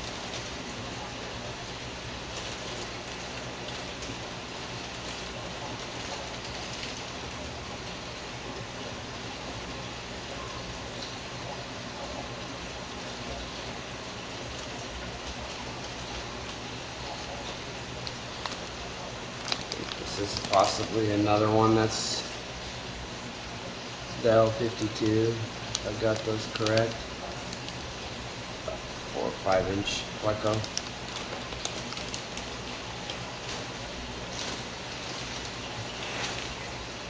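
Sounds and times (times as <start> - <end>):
aquarium water bubbling: 0.0 - 37.0.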